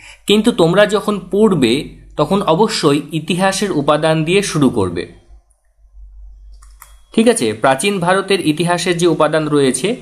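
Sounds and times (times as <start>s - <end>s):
faint low hum: 0.0s - 10.0s
soft clicks: 6.5s - 7.0s.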